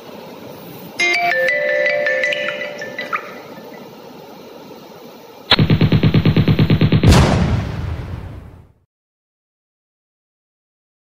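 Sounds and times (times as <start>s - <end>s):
background music: 1.0s - 3.7s
rapid machine-gun fire: 5.5s - 8.7s.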